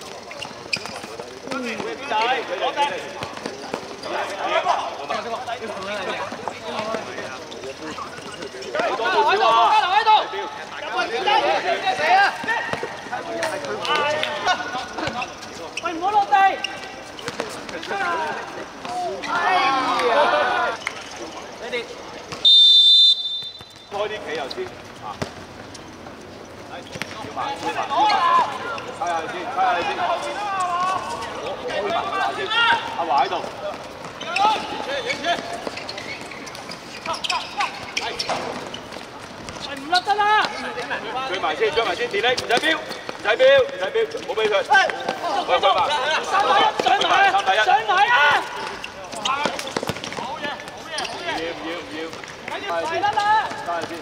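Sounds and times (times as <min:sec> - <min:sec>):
players calling out: 0:00.0 - 0:54.0
shoes on hard court: 0:00.0 - 0:54.0
referee's whistle blast: 0:22.4 - 0:24.0.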